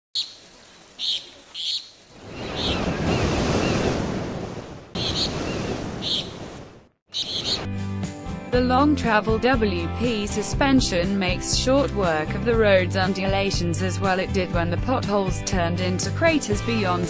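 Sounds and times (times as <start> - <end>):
high bird chirps: 0.2 - 0.4, 1.0 - 3.8, 5.0 - 6.4, 7.1 - 7.7
ocean surf washing: 1.0 - 6.9
music: 7.5 - 17.0.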